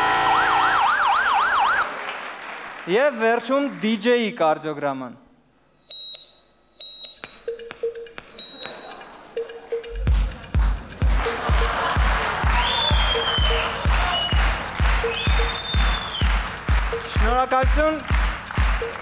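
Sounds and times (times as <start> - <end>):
short electronic beeps: 5.8 - 9.0
dance track with kick drum: 7.1 - 19.0.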